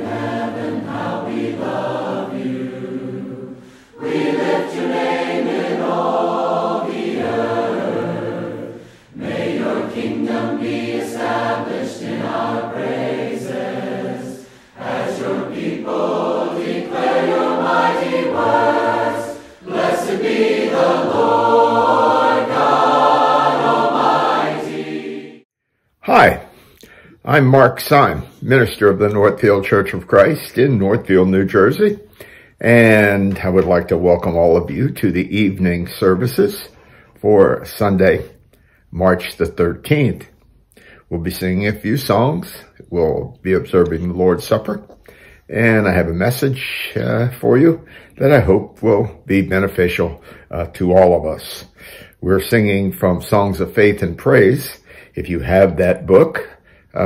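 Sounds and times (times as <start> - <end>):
choir singing: 0.0 - 25.5.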